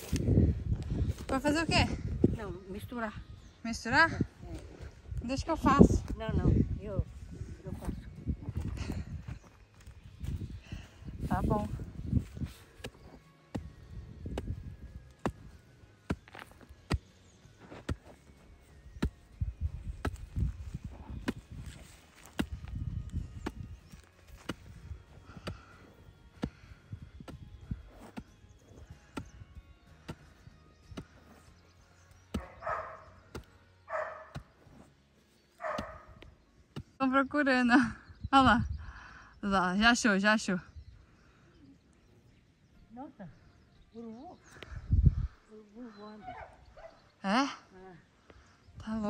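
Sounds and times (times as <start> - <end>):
hoe chopping and scraping soil: 11.4 - 37.0.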